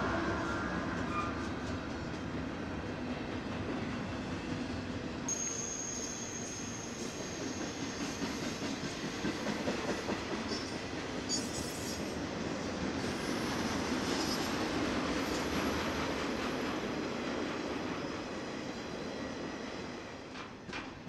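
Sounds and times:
freight train wheels rumbling on rail: 0:00.0 - 0:21.0
train wheels squealing: 0:00.4 - 0:01.8, 0:05.3 - 0:12.3, 0:13.0 - 0:16.4, 0:17.8 - 0:20.7.

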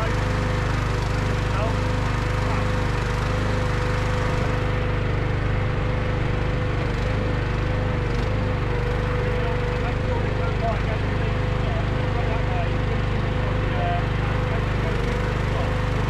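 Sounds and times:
firewood processor running: 0:00.0 - 0:16.0.

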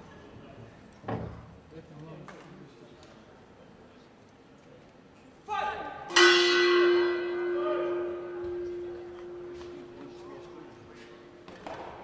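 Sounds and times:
boxing ring bell ringing: 0:06.1 - 0:11.4.

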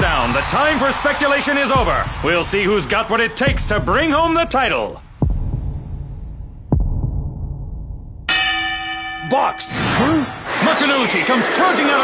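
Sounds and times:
boxing ring bell ringing: 0:08.3 - 0:10.4.

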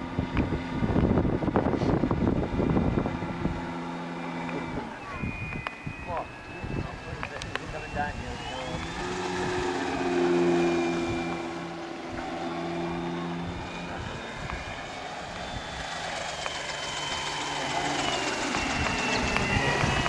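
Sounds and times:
model aircraft engine drone: 0:00.0 - 0:20.0.

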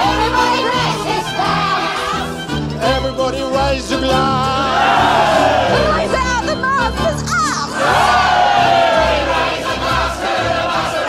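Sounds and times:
choir singing over orchestra: 0:00.0 - 0:03.1, 0:04.2 - 0:06.2, 0:07.7 - 0:11.0.

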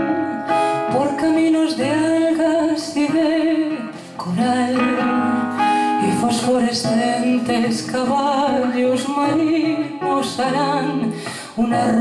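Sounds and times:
acoustic guitar: 0:00.0 - 0:12.0
woman singing: 0:00.0 - 0:12.0.

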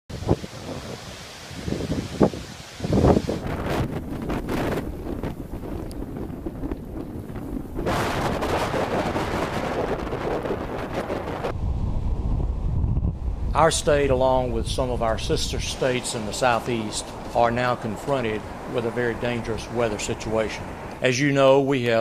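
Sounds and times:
waves and surf: 0:00.1 - 0:05.7, 0:13.5 - 0:21.1
gusty wind on microphone: 0:00.1 - 0:21.0.

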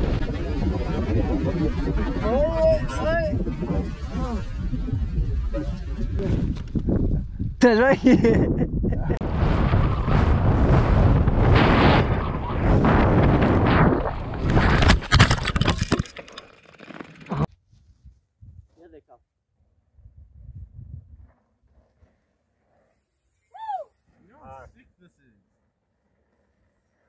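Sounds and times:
wind rushing: 0:00.0 - 0:15.7
tyres on dirt: 0:14.4 - 0:17.5
person crying out: 0:23.6 - 0:23.9.

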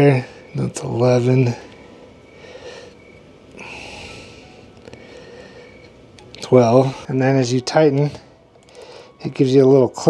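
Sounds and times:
person breathing out through nose: 0:03.6 - 0:05.9.

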